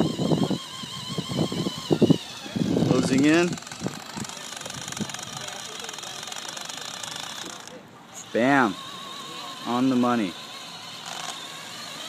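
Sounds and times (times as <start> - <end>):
electric motor whirring: 0.0 - 12.0.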